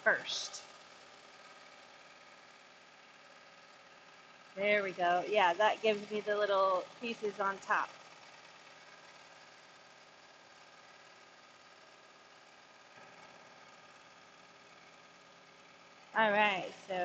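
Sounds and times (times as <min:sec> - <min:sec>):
faint mechanical hum: 0:00.0 - 0:17.0.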